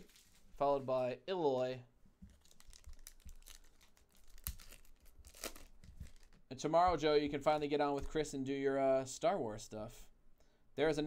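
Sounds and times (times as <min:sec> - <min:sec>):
foil wrapper tearing and crinkling: 0:02.3 - 0:06.4.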